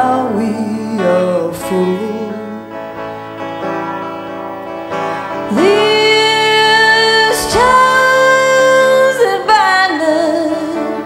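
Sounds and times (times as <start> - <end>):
woman singing a ballad: 0.0 - 2.6, 5.5 - 11.0
guitar accompaniment: 0.0 - 11.0.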